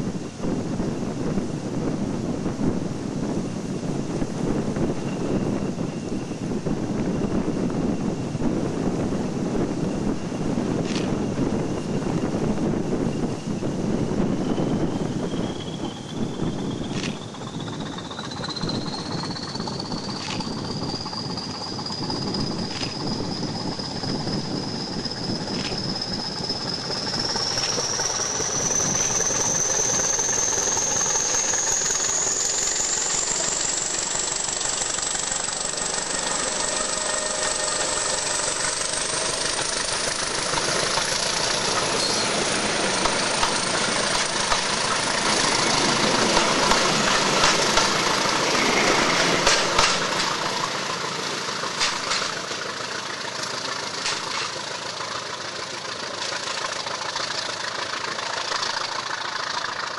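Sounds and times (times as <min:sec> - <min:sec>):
diesel locomotive engine: 0:00.0 - 0:59.9
high whine rising in pitch: 0:03.9 - 0:52.4
wheels clicking over rail joints: 0:15.4 - 0:24.5, 0:25.2 - 0:59.9.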